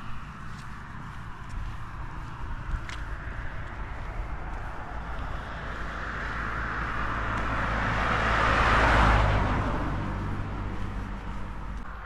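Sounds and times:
car driving past: 2.9s - 12.0s.

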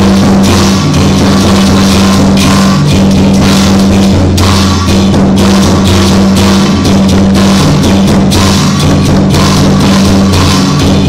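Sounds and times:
drum gongs and cymbals: 0.0s - 11.0s.

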